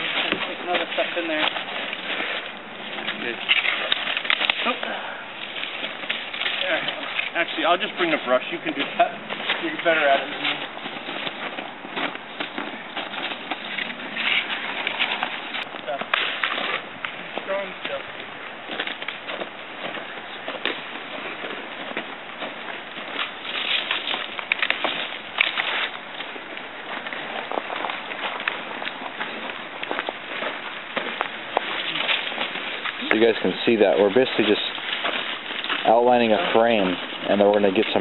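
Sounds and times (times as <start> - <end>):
dry branches rustling: 0.0 - 38.0
twigs cracking and snapping: 0.0 - 38.0.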